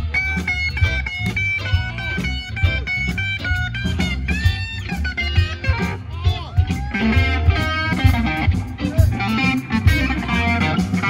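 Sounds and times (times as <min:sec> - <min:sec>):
electric blues band playing: 0:00.0 - 0:11.0
electric guitar lines: 0:00.0 - 0:11.0.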